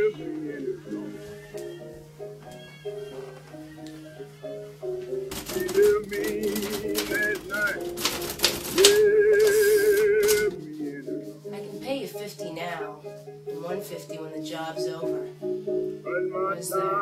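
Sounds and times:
background music: 0.0 - 17.0
typewriter clattering: 5.3 - 10.6.

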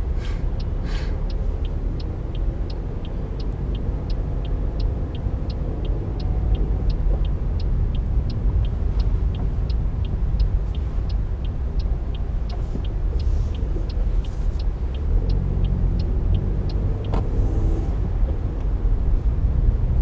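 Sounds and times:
low rumble of car engine: 0.0 - 20.0
turn signal ticking: 0.0 - 20.0.

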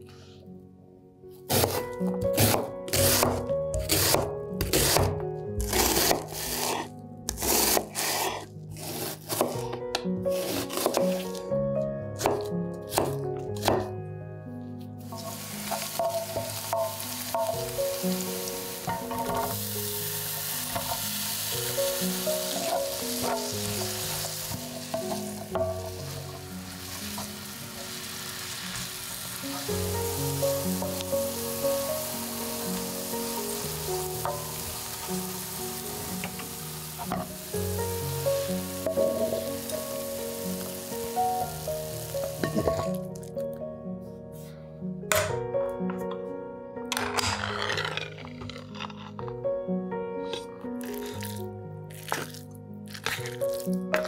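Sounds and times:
background music: 0.0 - 54.0
knife cutting onion on board: 1.5 - 11.4, 12.2 - 13.9
onion sizzling in frying pan: 15.0 - 43.1.

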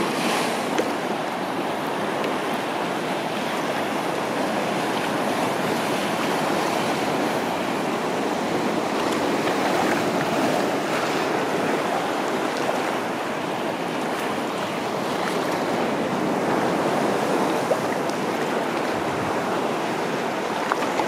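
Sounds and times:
water splashing around kayak hull: 3.3 - 21.0.

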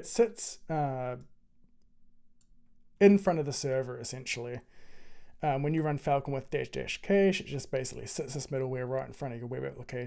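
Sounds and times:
person speaking: 0.0 - 4.7, 5.3 - 10.0.

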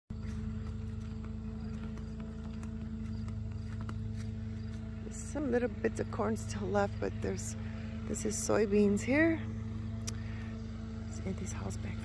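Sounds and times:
low machine hum: 0.1 - 12.0.

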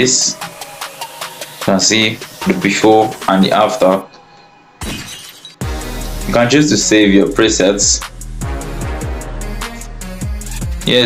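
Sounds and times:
glass shattering: 4.8 - 5.6
music with heavy bass: 5.6 - 11.0.

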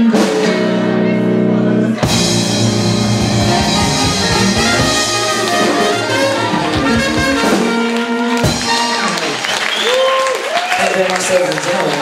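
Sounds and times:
soul band playing: 0.0 - 10.5
audience applause: 3.4 - 12.0.

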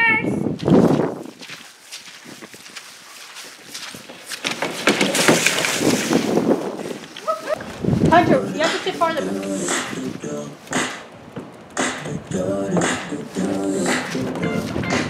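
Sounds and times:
toy car rattling down plastic track: 4.4 - 6.4.

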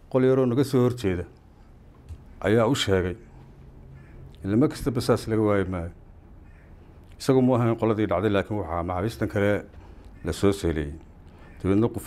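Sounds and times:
man speaking: 0.0 - 1.4, 2.4 - 3.3, 4.4 - 6.0, 7.2 - 12.0.

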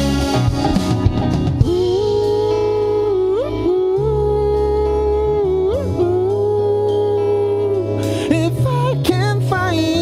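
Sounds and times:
sustained bass notes: 0.0 - 10.0.

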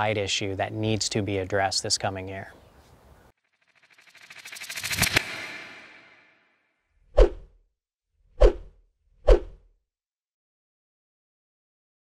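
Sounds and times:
whoosh sound effects: 3.7 - 6.4.

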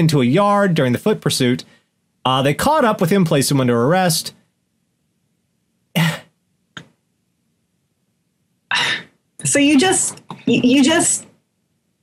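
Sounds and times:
person coughing: 6.0 - 6.4.

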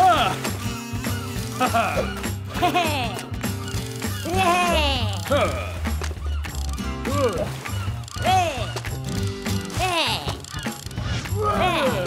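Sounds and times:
cartoon music with swooping notes: 0.0 - 12.0.

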